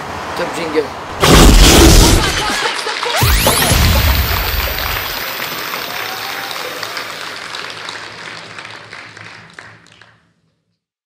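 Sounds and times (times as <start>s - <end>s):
hands clapping: 4.0s - 10.3s.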